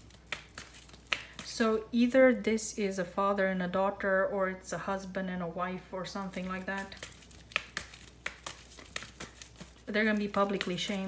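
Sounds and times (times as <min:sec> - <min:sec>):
cards clicking and rustling: 0:00.0 - 0:01.6, 0:06.2 - 0:11.0
person speaking: 0:01.4 - 0:07.1, 0:09.8 - 0:11.0.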